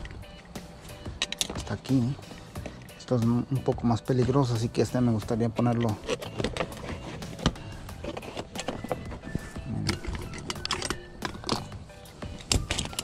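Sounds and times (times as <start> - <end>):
hand tools clicking and knocking: 1.2 - 2.0, 4.2 - 13.0.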